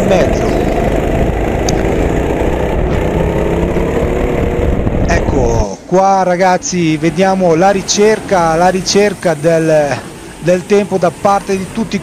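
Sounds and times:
go-kart engine running: 0:00.0 - 0:12.0
heavy low rumble: 0:00.0 - 0:12.0.

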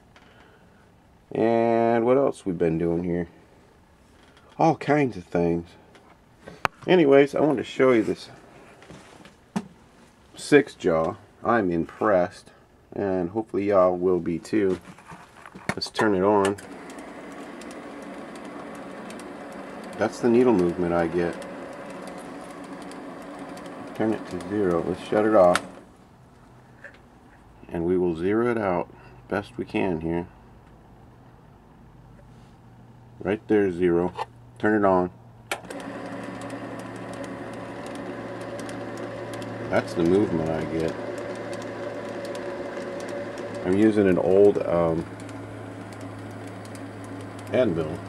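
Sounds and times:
light regular ticking: 0:16.4 - 0:25.9, 0:35.7 - 0:48.0
lathe running with steady hum: 0:16.6 - 0:25.9, 0:35.6 - 0:48.0.

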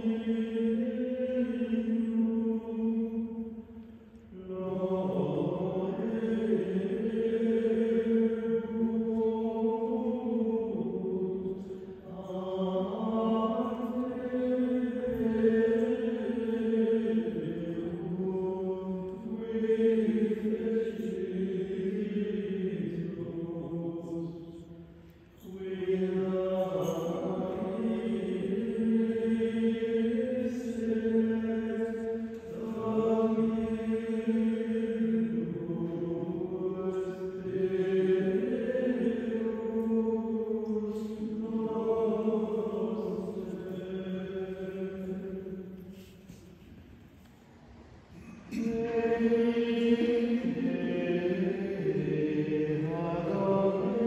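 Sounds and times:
male choir chanting: 0:00.0 - 0:46.4, 0:48.2 - 0:54.0.

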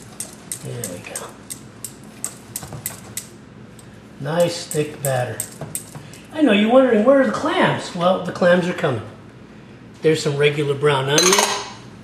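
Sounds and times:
whisk clicking against metal bowl: 0:00.0 - 0:03.3.

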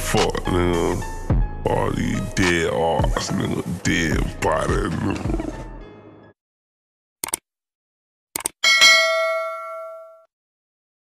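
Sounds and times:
mouse click: 0:07.2 - 0:07.4
notification bell ding: 0:08.6 - 0:10.3.

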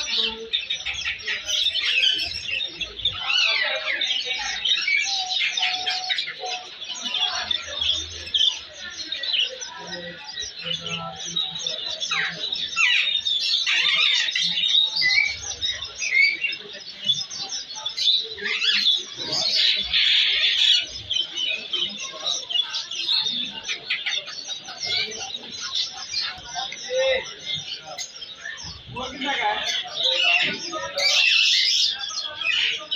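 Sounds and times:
budgerigars chirping and chattering: 0:00.0 - 0:32.9.

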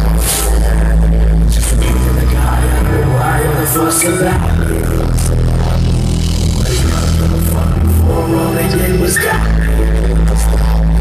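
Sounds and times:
heavy bass line: 0:00.0 - 0:11.0
person rapping: 0:00.0 - 0:11.0.

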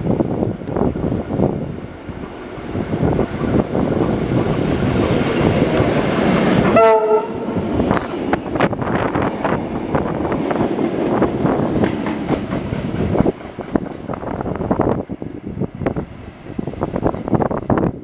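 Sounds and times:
train rumbling past: 0:00.0 - 0:18.0
train horn blast: 0:06.7 - 0:07.6.

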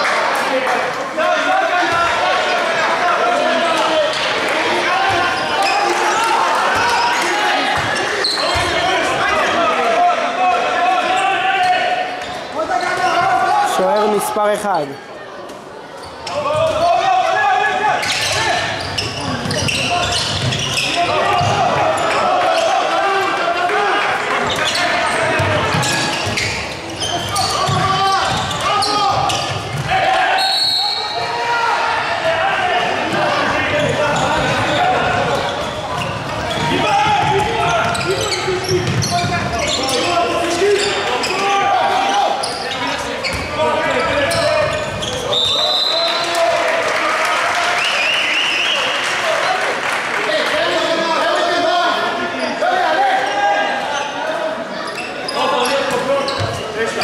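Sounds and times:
people shouting: 0:27.0 - 0:38.6
ball bouncing on hardwood court: 0:38.7 - 0:39.5.

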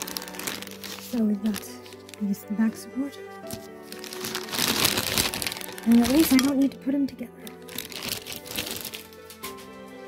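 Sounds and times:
plastic packaging crinkling: 0:00.0 - 0:09.6.

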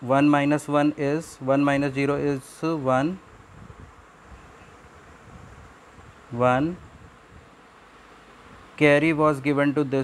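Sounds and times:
person speaking: 0:00.0 - 0:03.3, 0:06.3 - 0:07.0, 0:08.7 - 0:10.0
low hiss and hum: 0:00.0 - 0:10.0.

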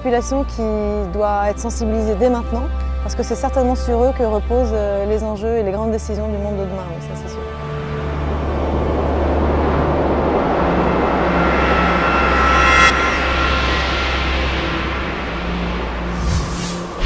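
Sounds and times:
low hum: 0:07.0 - 0:17.0
whoosh sound effect with whine: 0:07.9 - 0:17.0.

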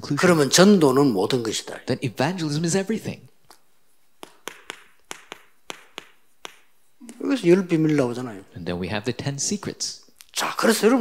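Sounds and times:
chalk tapping on chalkboard: 0:04.2 - 0:07.0.

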